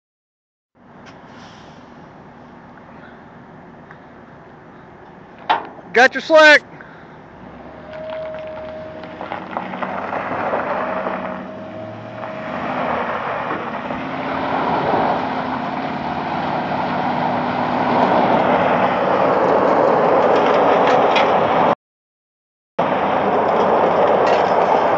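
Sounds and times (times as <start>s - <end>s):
truck engine labouring: 5.5s - 21.7s
tyres spinning on gravel: 7.4s - 17.0s.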